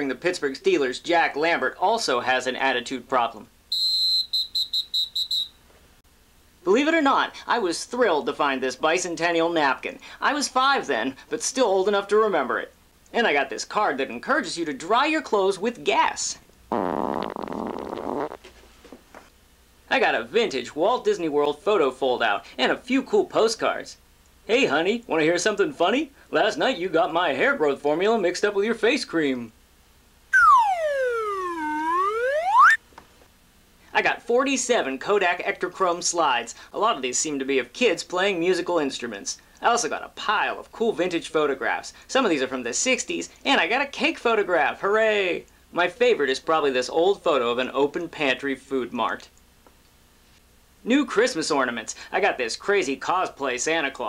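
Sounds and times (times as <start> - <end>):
comic gliding tone: 30.4 - 32.8
high-pitched electronic beeps: 30.4 - 32.8.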